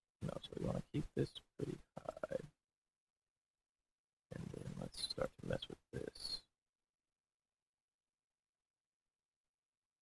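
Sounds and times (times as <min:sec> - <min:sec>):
man muttering and grunting: 0:01.6 - 0:02.5.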